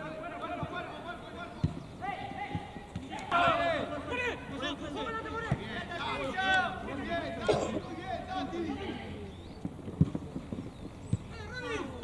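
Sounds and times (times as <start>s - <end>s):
football kicks dull thumps: 9.6s - 11.3s.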